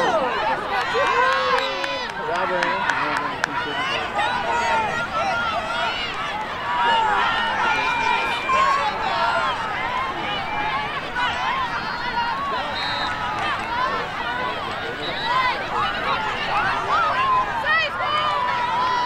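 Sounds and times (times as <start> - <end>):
girls calling and shouting: 0.0 - 19.0.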